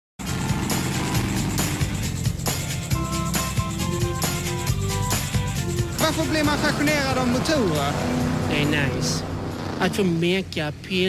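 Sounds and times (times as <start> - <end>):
tractor engine running hard: 0.2 - 4.5, 5.2 - 11.0
music playing: 0.2 - 10.2.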